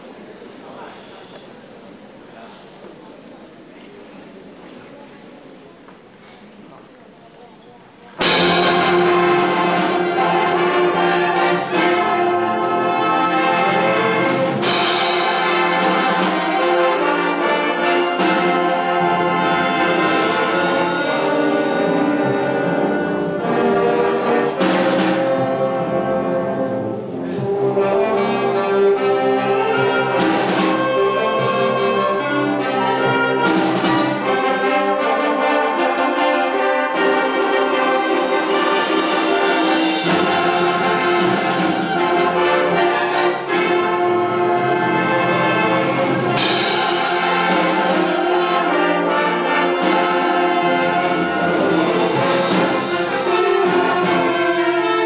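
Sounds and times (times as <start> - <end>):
concert band playing: 8.2 - 55.0
sharp struck accents: 14.6 - 18.8, 39.8 - 43.8.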